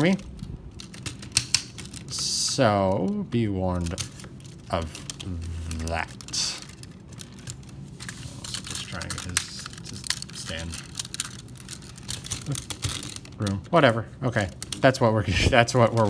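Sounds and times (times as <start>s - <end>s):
plastic toy parts clicking: 0.7s - 2.3s, 8.5s - 13.5s.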